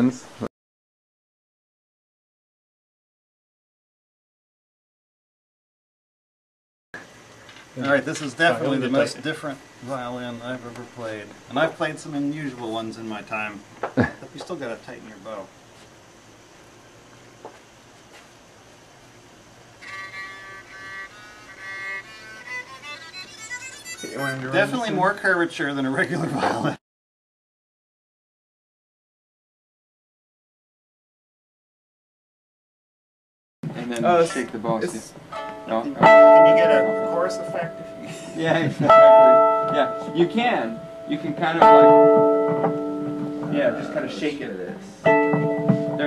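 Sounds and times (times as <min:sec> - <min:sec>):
people talking: 0:07.8 - 0:15.5, 0:24.0 - 0:26.8, 0:33.7 - 0:42.0, 0:43.4 - 0:45.0
electric violin bowed notes: 0:19.8 - 0:24.9, 0:35.4 - 0:38.0, 0:38.9 - 0:44.2.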